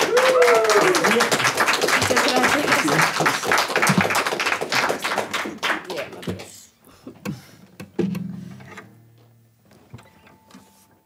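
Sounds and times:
audience clapping: 0:00.0 - 0:06.7.

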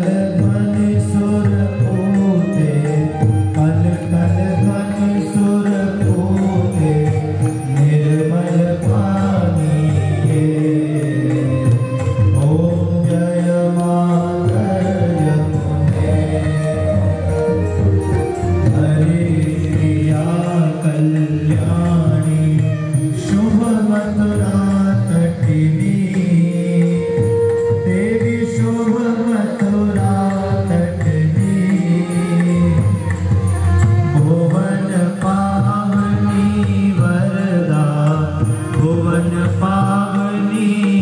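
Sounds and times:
devotional hymn chanting: 0:00.0 - 0:41.0.

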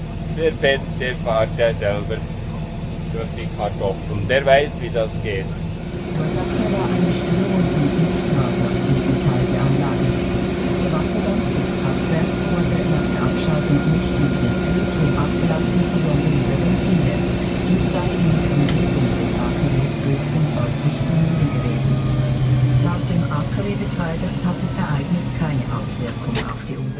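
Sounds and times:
tractor engine running: 0:00.0 - 0:26.9.

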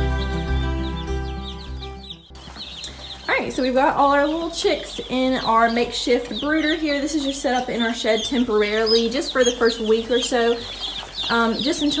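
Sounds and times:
background music: 0:00.0 - 0:12.0
chicks peeping: 0:00.0 - 0:12.0.

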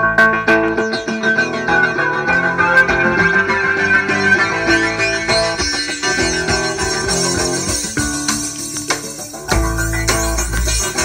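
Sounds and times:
electric guitars: 0:00.0 - 0:11.0
drum kit: 0:02.6 - 0:11.0.

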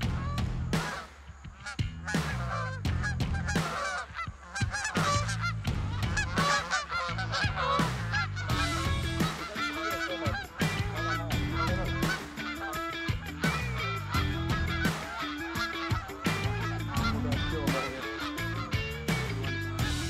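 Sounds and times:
geese honking: 0:00.0 - 0:20.0.

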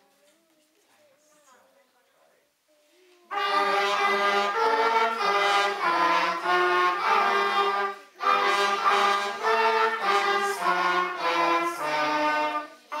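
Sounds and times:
brass ensemble playing slow tune: 0:03.3 - 0:13.0.

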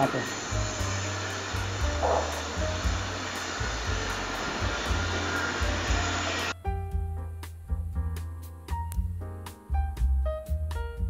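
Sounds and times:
steady rushing machine noise: 0:00.0 - 0:06.5
background music with bass line: 0:00.0 - 0:11.0
piano music: 0:00.0 - 0:11.0.

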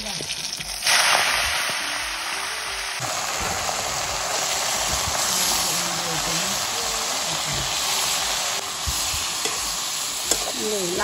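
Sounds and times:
greens sizzling in hot oil: 0:00.0 - 0:11.0.

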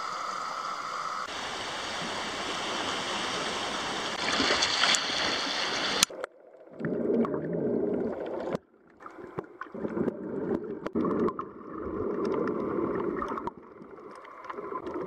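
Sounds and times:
muffled underwater rushing: 0:00.0 - 0:15.0
water sloshing: 0:01.9 - 0:06.1
small underwater clicks: 0:04.4 - 0:07.4, 0:08.0 - 0:15.0.

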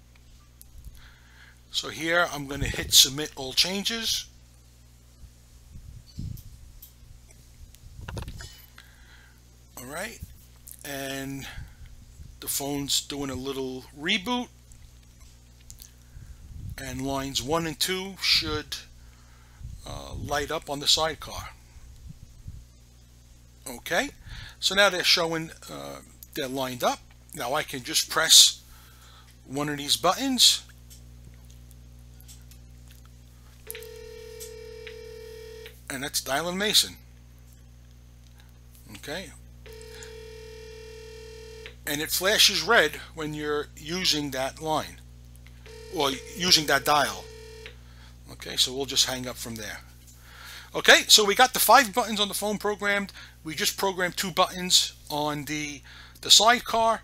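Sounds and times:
steady low hum: 0:00.0 - 0:57.0
low hum: 0:30.6 - 0:48.9
phone ringback tone: 0:33.7 - 0:35.8, 0:39.7 - 0:41.8, 0:45.7 - 0:47.8.

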